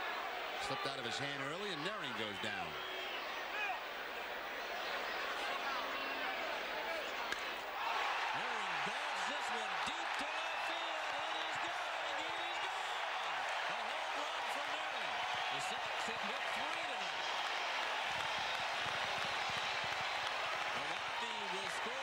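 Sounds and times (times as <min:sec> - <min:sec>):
crowd cheering and applauding: 0:00.0 - 0:22.0.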